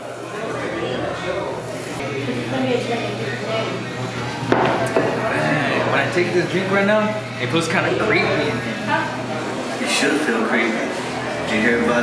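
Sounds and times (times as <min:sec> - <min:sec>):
murmur of background voices: 0:00.0 - 0:12.0
glass bottle set down on counter: 0:04.5 - 0:05.2.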